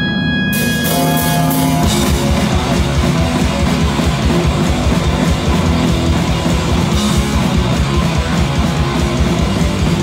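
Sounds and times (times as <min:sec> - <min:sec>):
bass guitar: 0:00.0 - 0:10.0
distorted electric guitars: 0:00.0 - 0:10.0
fast driving drums: 0:00.5 - 0:10.0.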